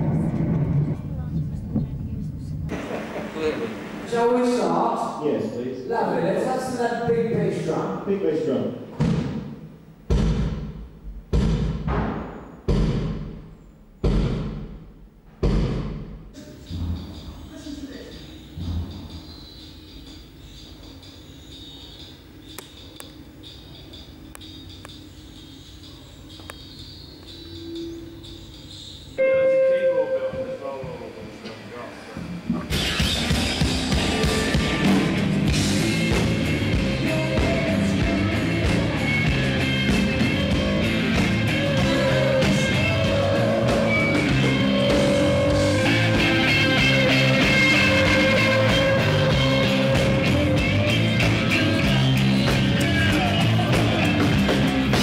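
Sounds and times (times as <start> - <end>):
rock band playing loudly: 2.7 - 4.1, 32.7 - 55.0
held note: 29.2 - 30.9, 41.4 - 51.2.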